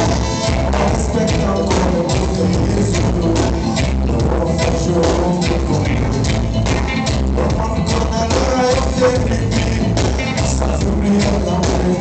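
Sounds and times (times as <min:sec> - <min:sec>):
live reggae band playing: 0:00.0 - 0:12.0.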